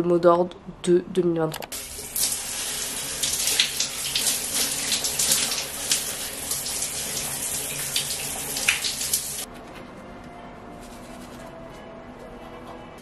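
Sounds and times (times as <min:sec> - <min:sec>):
shower spray running: 0:01.7 - 0:09.5
water splashing on person: 0:01.9 - 0:09.5.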